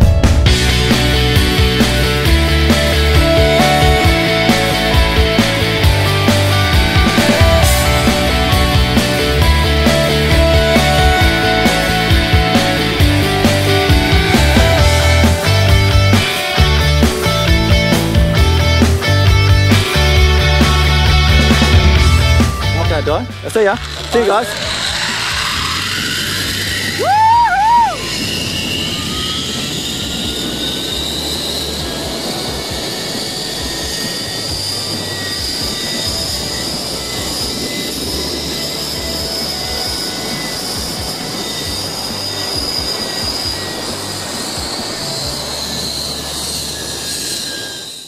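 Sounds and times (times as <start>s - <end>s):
zipline pulleys running on cable: 0.7s - 48.0s
high wavering whoop: 24.6s - 29.5s.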